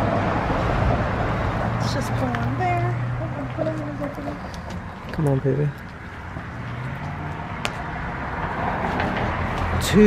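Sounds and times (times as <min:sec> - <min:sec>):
low outdoor rumbling: 0:00.0 - 0:10.0.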